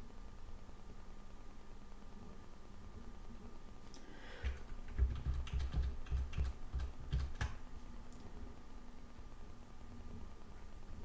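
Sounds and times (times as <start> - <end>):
keyboard keys clicking: 4.4 - 7.6.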